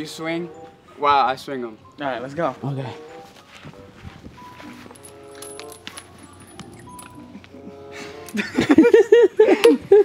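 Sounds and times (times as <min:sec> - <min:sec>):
soft background music: 0:00.0 - 0:10.0
swing chains clinking: 0:04.4 - 0:08.7.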